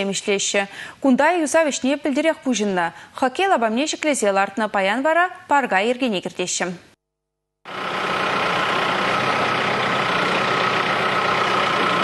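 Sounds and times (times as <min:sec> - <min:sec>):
diesel engine running: 0:07.7 - 0:12.0.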